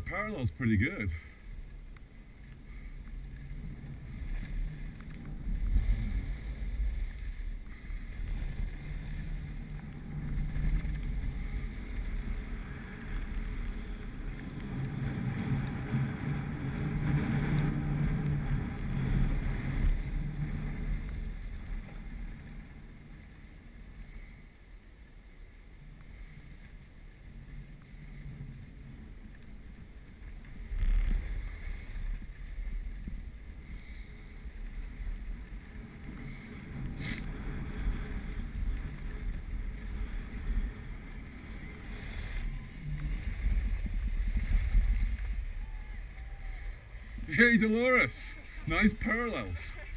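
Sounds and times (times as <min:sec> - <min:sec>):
skis sliding on snow: 0:00.0 - 0:49.9
wind rushing over microphone: 0:02.2 - 0:23.7, 0:27.3 - 0:49.9.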